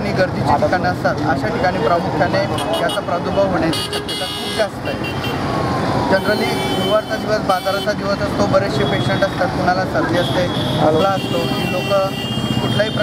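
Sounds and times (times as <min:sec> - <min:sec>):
man talking: 0:00.0 - 0:05.2, 0:06.0 - 0:13.0
traffic noise: 0:00.0 - 0:13.0
vehicle horn toots: 0:10.2 - 0:13.0.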